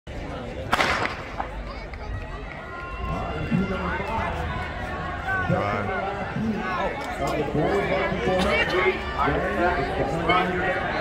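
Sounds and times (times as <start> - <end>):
spectators' voices: 0.1 - 11.0
starter's gun shot: 0.7 - 1.3.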